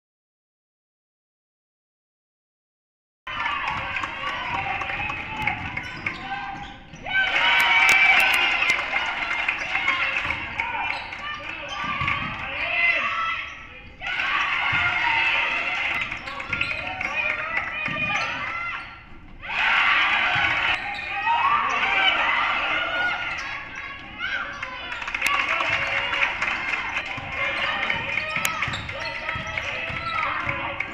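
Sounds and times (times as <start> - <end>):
players and spectators voices: 3.3 - 30.9.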